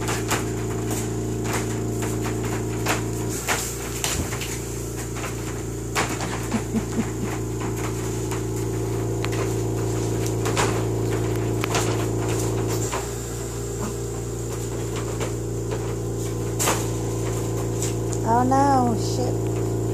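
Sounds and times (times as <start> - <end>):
steady machine hum: 0.0 - 19.9.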